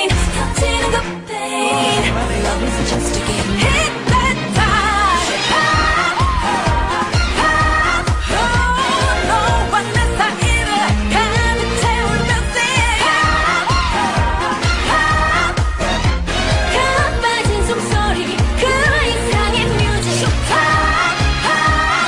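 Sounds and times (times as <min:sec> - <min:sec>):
pop dance track with female vocals: 0:00.0 - 0:22.0.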